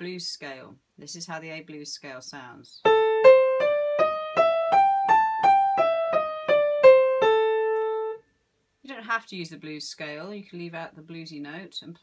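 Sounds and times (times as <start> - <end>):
piano playing scale: 2.8 - 8.2.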